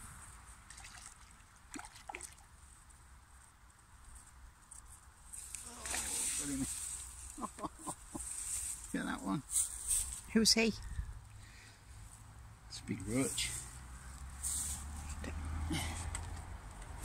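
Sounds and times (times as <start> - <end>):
water sloshing and dripping: 0.6 - 2.6, 5.5 - 6.9
water splashing: 0.6 - 2.6, 5.5 - 7.2.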